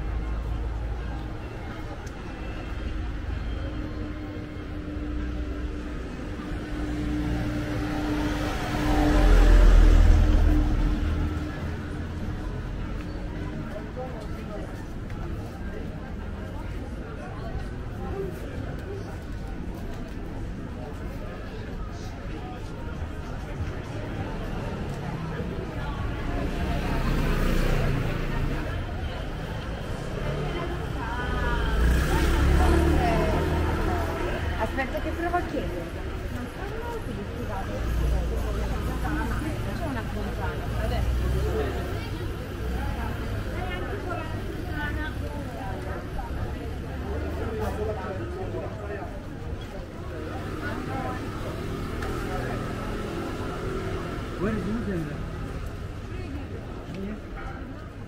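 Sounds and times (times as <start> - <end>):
people talking: 0.0 - 58.0
vehicle engine passing by: 6.4 - 12.4, 29.9 - 35.5.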